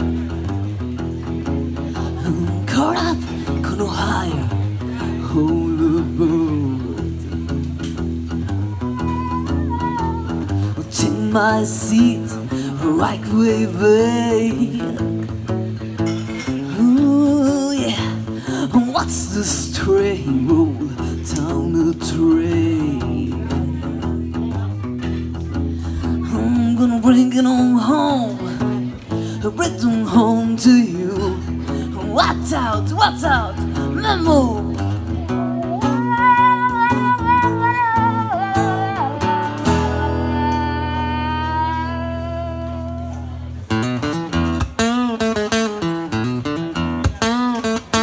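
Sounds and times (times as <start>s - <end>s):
acoustic guitar blues riff: 0.0s - 48.0s.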